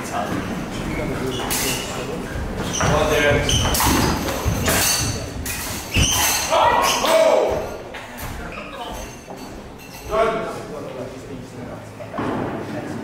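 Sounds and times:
swords clashing: 0:03.6 - 0:07.8.

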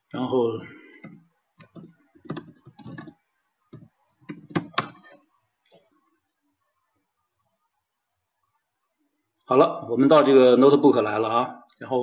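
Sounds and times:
keyboard typing: 0:01.0 - 0:05.2.

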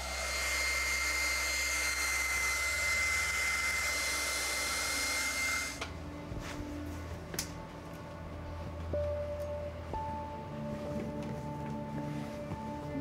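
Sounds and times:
hair dryer blowing: 0:00.0 - 0:06.0.

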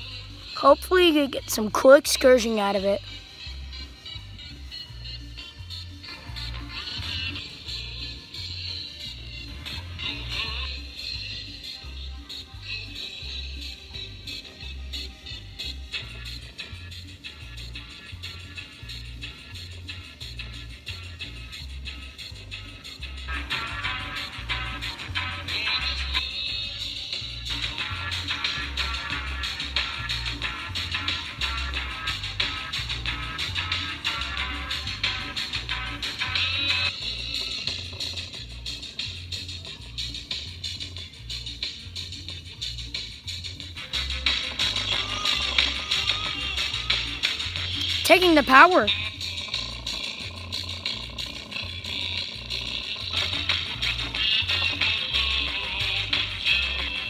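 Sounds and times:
pop song on distorted small speaker: 0:00.0 - 0:57.0.

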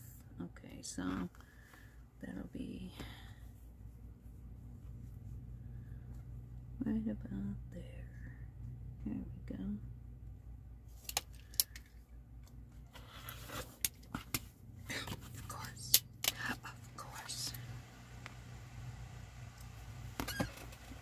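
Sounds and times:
faint whispered mutter: 0:14.9 - 0:17.7.

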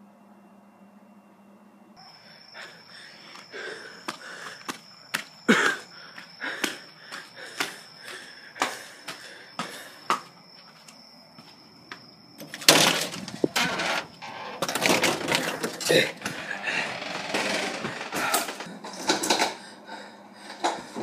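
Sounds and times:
faint high whine: 0:00.0 - 0:21.0
loud rustling and scuffling: 0:12.4 - 0:18.7.

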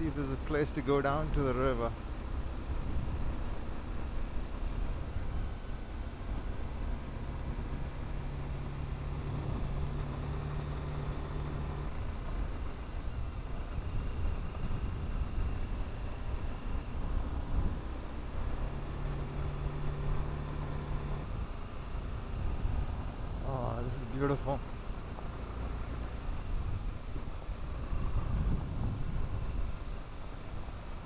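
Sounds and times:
motorcycle engine cruising: 0:00.0 - 0:31.0
wind: 0:00.0 - 0:31.0.

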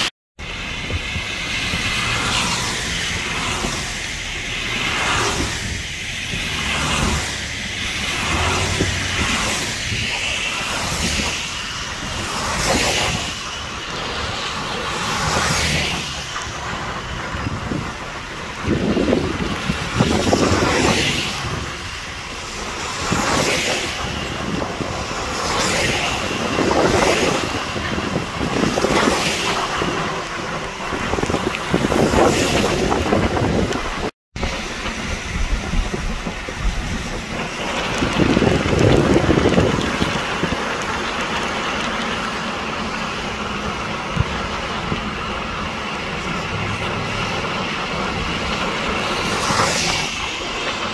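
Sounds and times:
car tyres hissing on wet road: 0:00.0 - 0:50.9
wash of spray: 0:00.0 - 0:50.9.

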